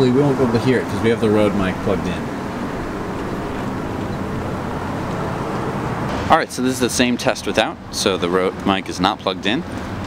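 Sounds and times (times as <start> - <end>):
street traffic: 0.0 - 10.0
wind: 0.0 - 10.0.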